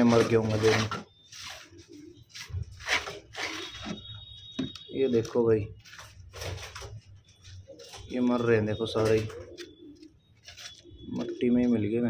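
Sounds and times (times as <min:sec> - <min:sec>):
man speaking: 0:00.0 - 0:01.0, 0:04.9 - 0:05.8, 0:08.1 - 0:09.5, 0:11.1 - 0:12.0
pigeons cooing: 0:00.0 - 0:04.2, 0:06.4 - 0:12.0.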